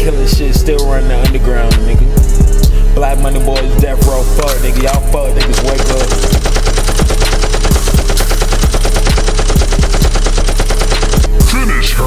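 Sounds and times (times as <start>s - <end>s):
bass note and kick drum beat: 0.0s - 10.2s
automatic gunfire: 4.4s - 11.7s.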